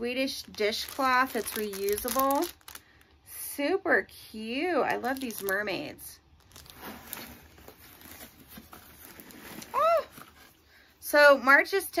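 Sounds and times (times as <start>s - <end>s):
packaging rustling: 0.3s - 3.1s, 4.9s - 5.8s, 6.4s - 10.6s.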